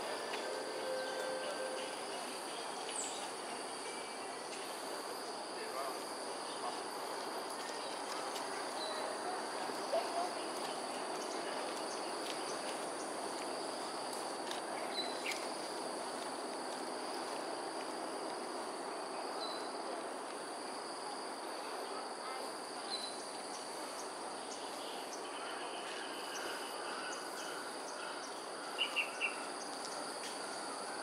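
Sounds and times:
insects droning: 0:00.0 - 0:31.0.

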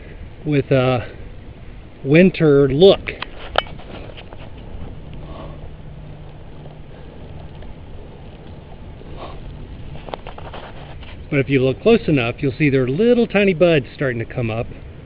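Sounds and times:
bicycle tyres rolling on road: 0:00.0 - 0:15.0.

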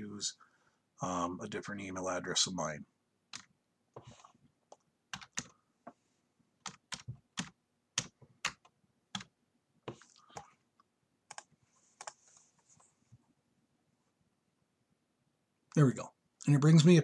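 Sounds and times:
typing on computer keyboard: 0:04.7 - 0:05.5, 0:06.6 - 0:09.3, 0:11.3 - 0:12.2.

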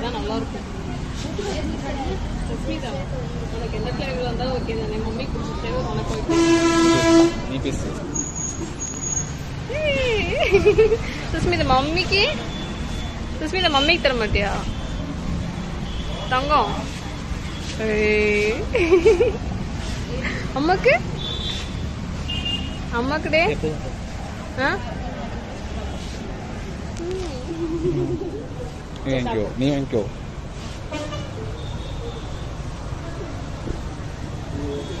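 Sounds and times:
background traffic rumble: 0:00.0 - 0:35.0.

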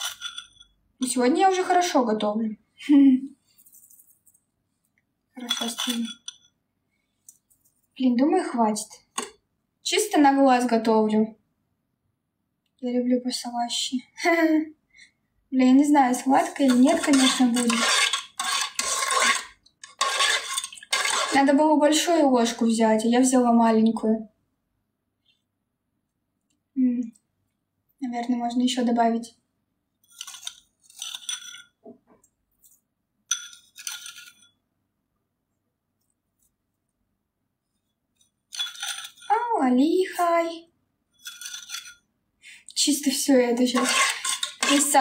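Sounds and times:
teaspoon scraping a dish: 0:00.0 - 0:00.8, 0:05.4 - 0:06.5, 0:16.2 - 0:21.6, 0:30.0 - 0:31.8, 0:33.3 - 0:34.6, 0:38.5 - 0:39.5, 0:41.2 - 0:42.1, 0:43.5 - 0:45.0.

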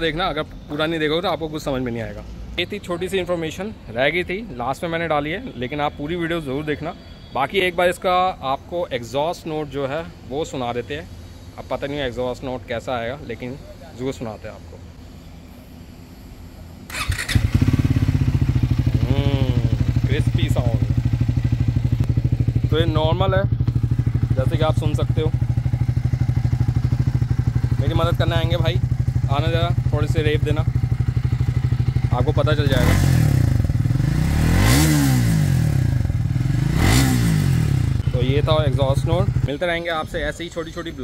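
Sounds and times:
motorcycle engine starting and idling: 0:16.9 - 0:39.6.

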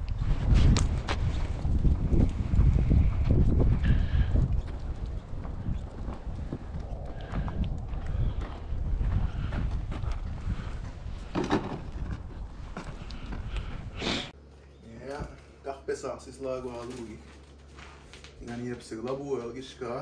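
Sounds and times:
wind buffeting microphone: 0:00.0 - 0:14.4.

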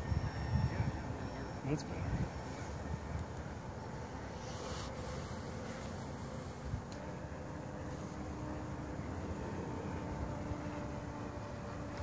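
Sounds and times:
wind noise on microphone: 0:00.0 - 0:01.2, 0:01.9 - 0:03.3
model airplane humming overhead: 0:00.0 - 0:12.0.

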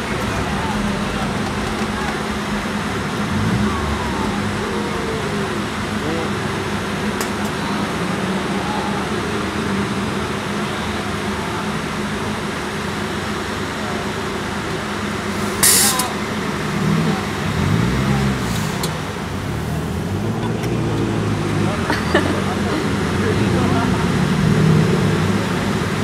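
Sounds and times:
cars idling and creeping: 0:00.0 - 0:26.0
crowd chatter: 0:00.0 - 0:26.0
short loud hiss: 0:15.4 - 0:16.2.

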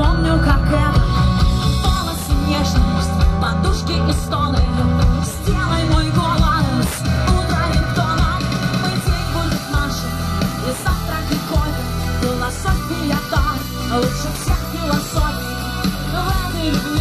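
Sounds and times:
live rock band playing: 0:00.0 - 0:17.0.

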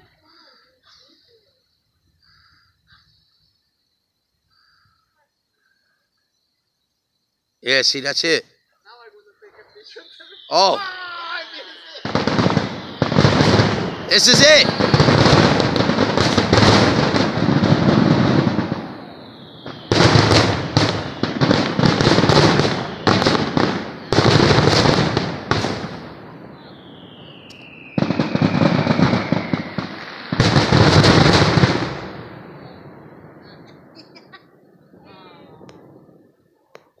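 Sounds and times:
fireworks bangs and crackle: 0:09.2 - 0:37.0
long falling whistle: 0:09.8 - 0:25.8, 0:26.4 - 0:33.5.

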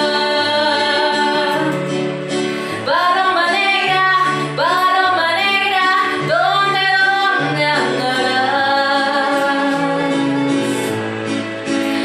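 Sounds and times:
woman singing into microphone: 0:00.0 - 0:10.8.

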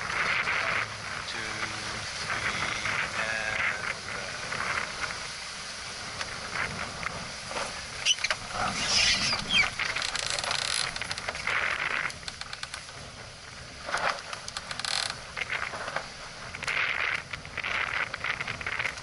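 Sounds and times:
water rushing past hull: 0:00.0 - 0:19.0
wind buffeting microphone: 0:00.0 - 0:19.0.

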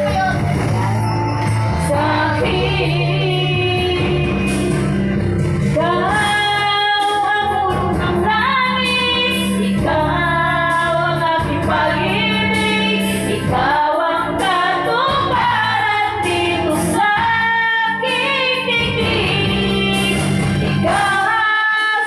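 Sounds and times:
backing track music: 0:00.0 - 0:22.0
woman singing into a microphone: 0:01.8 - 0:05.0, 0:05.7 - 0:22.0.

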